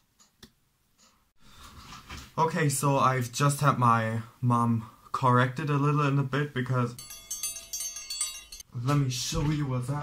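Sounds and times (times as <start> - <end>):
high chiming tones: 6.9 - 8.7.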